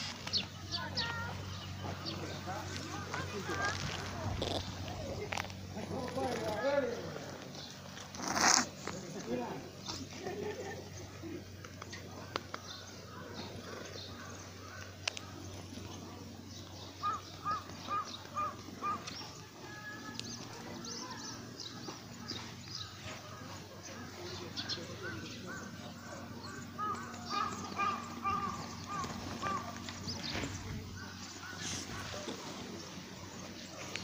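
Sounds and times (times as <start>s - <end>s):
steady low hum: 0.0s - 34.0s.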